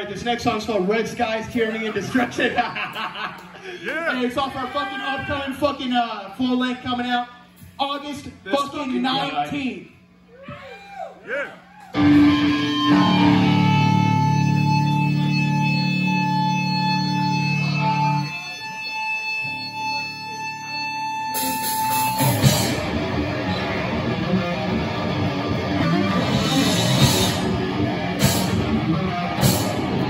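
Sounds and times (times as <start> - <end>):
heavy metal band playing: 12.0 - 30.0
sustained electric guitar and bass: 12.0 - 30.0.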